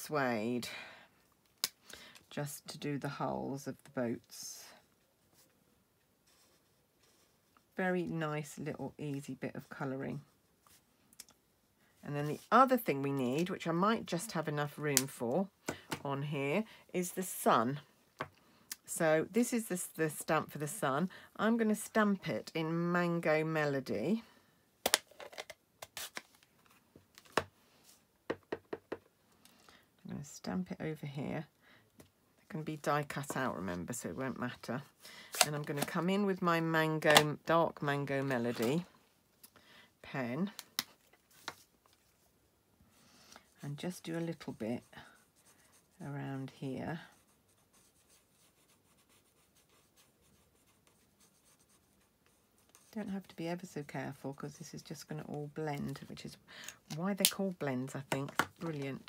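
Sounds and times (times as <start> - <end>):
marker scratching on paper: 47.1 - 53.0.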